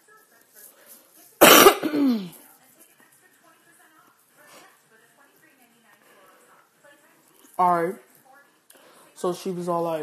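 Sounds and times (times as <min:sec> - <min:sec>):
woman coughing: 0:01.4 - 0:02.4.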